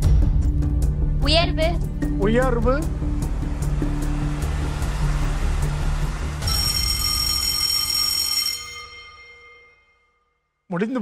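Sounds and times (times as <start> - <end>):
bright ringing chime: 6.4 - 10.4.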